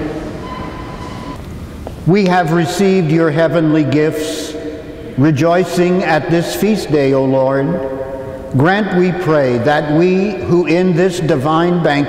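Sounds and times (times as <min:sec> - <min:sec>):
church room rumble and hiss: 0:00.0 - 0:12.0.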